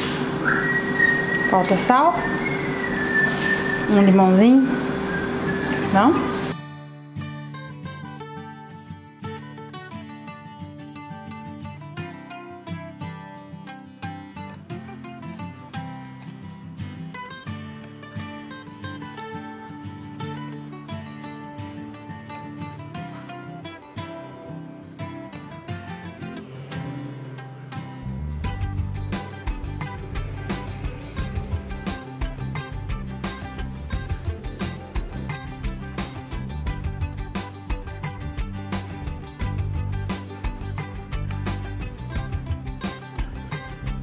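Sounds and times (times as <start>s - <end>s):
plucked acoustic guitar music: 0.0s - 44.0s
bass part: 28.0s - 44.0s.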